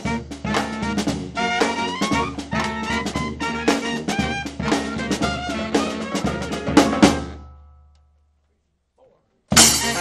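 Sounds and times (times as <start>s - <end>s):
bass drum: 0.0s - 7.7s, 9.5s - 10.0s
brass band playing: 0.0s - 7.7s, 9.5s - 10.0s.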